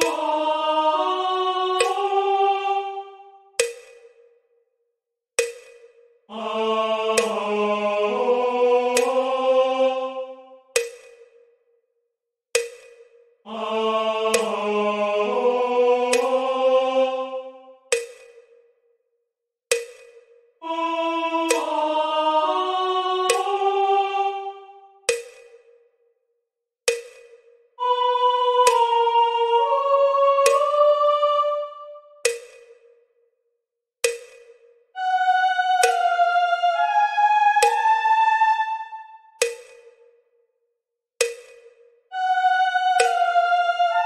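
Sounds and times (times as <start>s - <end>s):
metronome clicks: 0.0s - 0.3s, 1.8s - 2.1s, 3.6s - 4.2s, 5.4s - 5.9s, 9.0s - 9.2s, 10.8s - 11.4s, 12.6s - 13.1s, 17.9s - 18.5s, 19.7s - 20.3s, 21.5s - 21.7s, 23.3s - 23.6s, 25.0s - 25.6s, 26.9s - 27.4s, 28.6s - 28.9s, 30.4s - 30.7s, 32.2s - 32.8s, 34.0s - 35.1s, 35.7s - 36.1s, 37.6s - 37.8s, 39.4s - 40.0s, 41.2s - 43.3s
held musical note: 27.8s - 31.9s.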